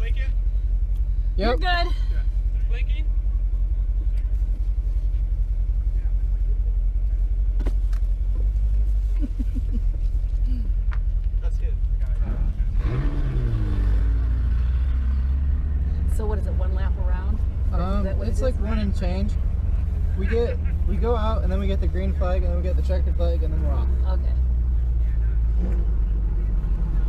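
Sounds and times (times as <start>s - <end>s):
sports car engine idling and revving: 0.0s - 27.0s.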